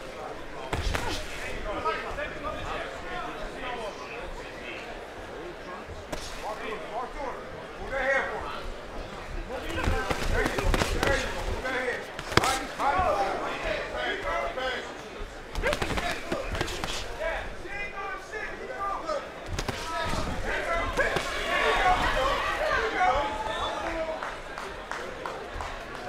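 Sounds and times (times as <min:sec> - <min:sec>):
boxing gloves slapping: 0:00.7 - 0:01.6, 0:09.6 - 0:13.3, 0:15.6 - 0:17.3, 0:19.5 - 0:22.3
crowd shouting: 0:15.6 - 0:24.4.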